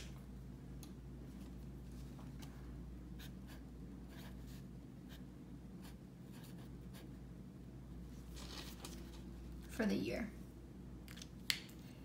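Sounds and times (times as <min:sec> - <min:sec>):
pen scratching on paper: 0:03.2 - 0:05.2, 0:05.8 - 0:07.2.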